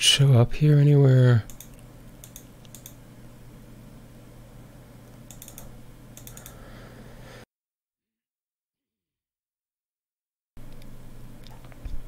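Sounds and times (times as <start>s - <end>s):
steady low hum: 0.0s - 7.4s, 10.6s - 12.0s
keyboard keystrokes: 1.5s - 3.0s, 5.3s - 6.6s.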